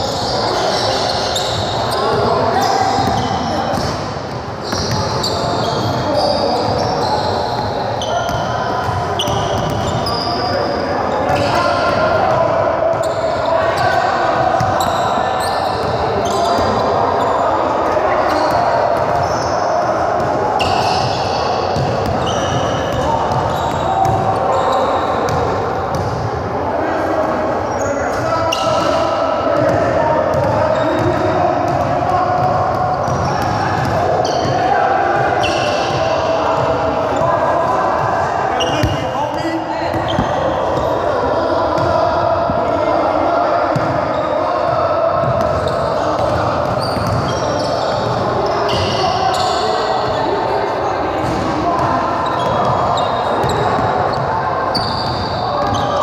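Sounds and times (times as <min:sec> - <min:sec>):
court noise echoing: 0:00.0 - 0:56.0.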